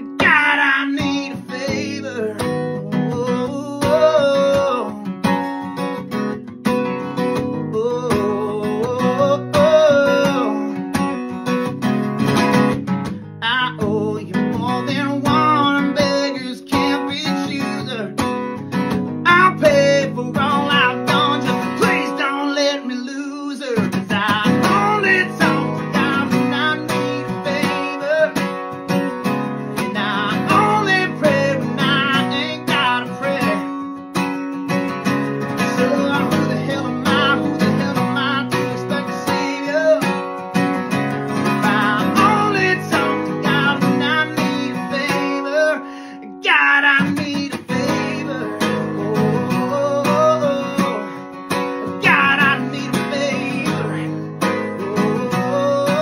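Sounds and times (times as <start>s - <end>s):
man singing: 0.0s - 5.8s, 7.1s - 11.8s, 12.4s - 56.0s
acoustic guitar strumming: 0.0s - 56.0s.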